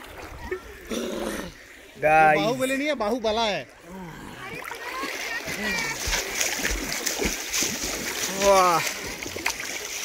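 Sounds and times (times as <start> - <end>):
river water splashing: 0.0 - 10.0.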